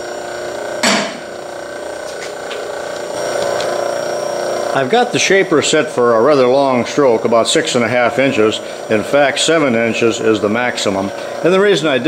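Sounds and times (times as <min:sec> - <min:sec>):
machine humming and whining: 0:00.0 - 0:12.0
metal cover clanking shut: 0:00.8 - 0:01.2.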